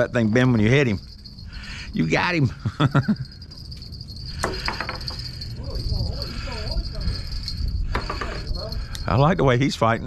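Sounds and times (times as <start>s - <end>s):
high-pitched insect drone: 0.0s - 9.8s
person's voice: 1.9s - 2.6s.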